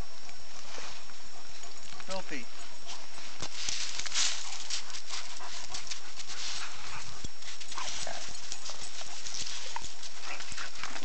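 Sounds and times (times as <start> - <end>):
dog paw steps on frozen gravel: 3.3 - 11.0.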